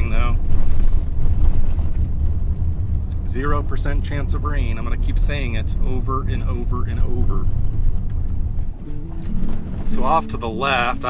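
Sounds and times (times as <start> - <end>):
car tyres on gravel: 0.0 - 8.8.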